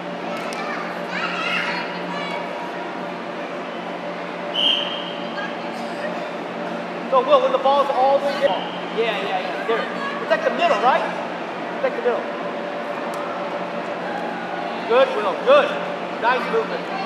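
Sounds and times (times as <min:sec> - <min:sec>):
steady low hum: 0:00.0 - 0:17.0
children shouting: 0:00.3 - 0:02.8
short high whistle: 0:04.5 - 0:05.2.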